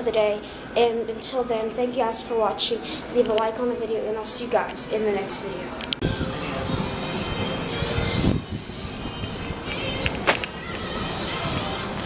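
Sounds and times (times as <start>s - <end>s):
city noise rumble: 2.2s - 12.0s.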